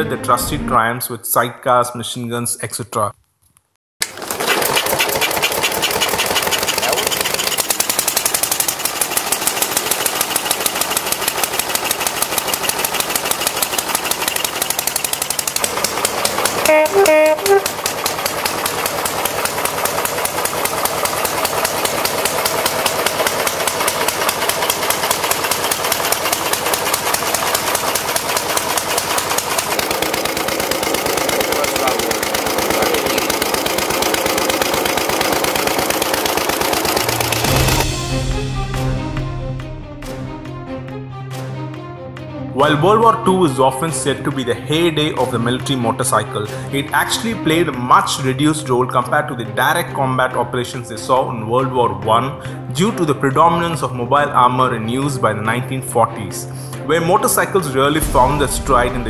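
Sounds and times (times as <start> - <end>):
motorcycle engine running: 4.1 - 38.2, 58.0 - 59.0
brief pitched sound: 16.6 - 17.7.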